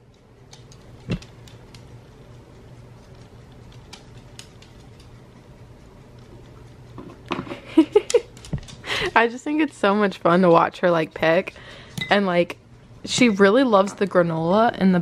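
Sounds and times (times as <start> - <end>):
low steady hum: 0.0 - 15.0
dog claws ticking on wood floor: 0.1 - 2.0, 3.0 - 5.2, 8.1 - 8.8.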